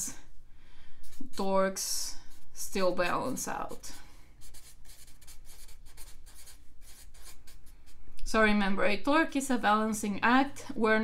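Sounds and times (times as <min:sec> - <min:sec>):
felt-tip marker writing on paper: 0:04.4 - 0:07.5.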